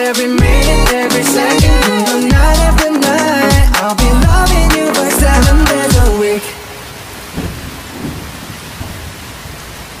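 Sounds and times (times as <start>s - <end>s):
song with singing and beat: 0.0s - 6.8s
steady hiss like rainfall: 0.0s - 10.0s
thunder rumbling: 7.3s - 9.6s.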